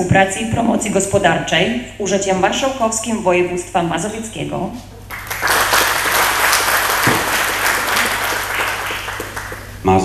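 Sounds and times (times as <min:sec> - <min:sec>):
audience applauding: 0:05.1 - 0:09.9.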